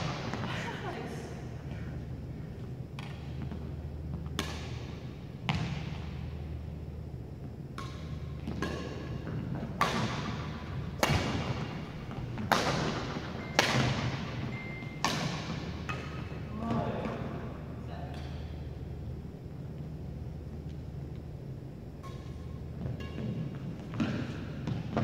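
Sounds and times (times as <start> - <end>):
steady low hum: 0.0 - 25.0
rackets hitting shuttlecock: 2.9 - 6.5, 7.4 - 17.2, 22.0 - 25.0.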